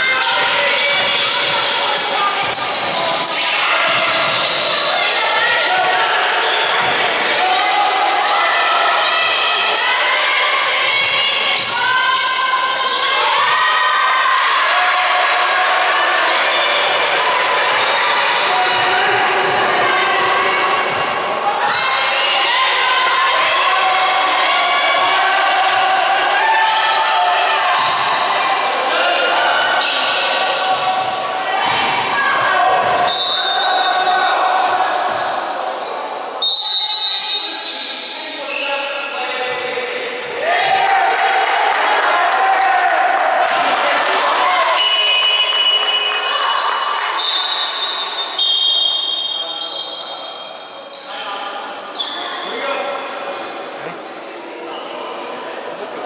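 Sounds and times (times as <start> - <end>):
people chattering: 0.0 - 56.0.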